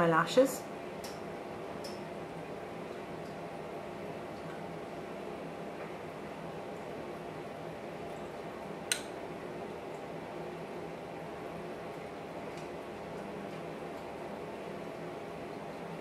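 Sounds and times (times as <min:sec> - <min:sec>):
low room hum: 0:00.0 - 0:16.0
sharp click: 0:08.9 - 0:09.1.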